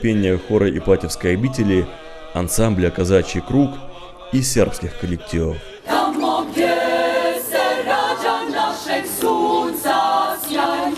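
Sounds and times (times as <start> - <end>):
women's choir singing a cappella: 0.1 - 10.9.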